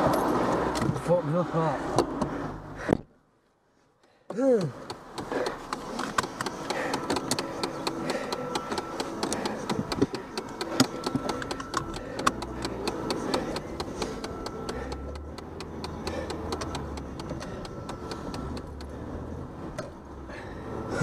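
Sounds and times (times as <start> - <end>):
car engine and road rumble: 0.0 - 21.0.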